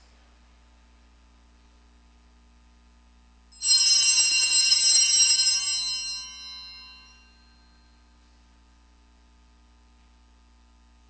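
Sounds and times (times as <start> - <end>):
altar bells ringing: 3.6 - 7.8.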